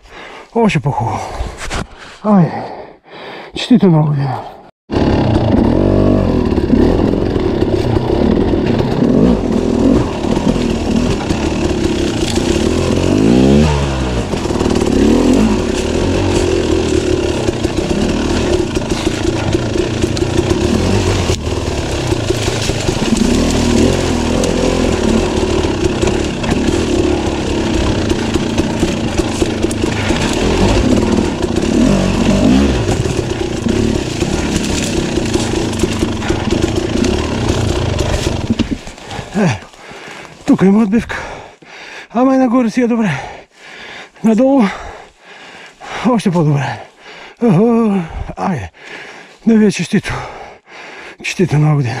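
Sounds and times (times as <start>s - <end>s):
dirt bike engine revving: 4.9s - 40.2s.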